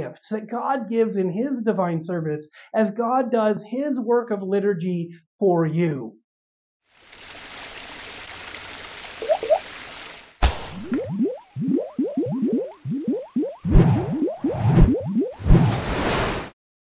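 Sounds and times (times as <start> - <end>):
drippy plops: 7.0 - 15.4
sudden hit: 10.4 - 10.9.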